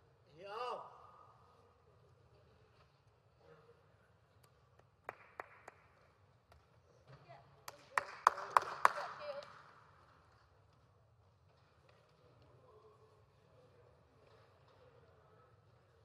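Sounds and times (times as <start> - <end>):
hand claps: 4.7 - 6.7, 7.6 - 9.9.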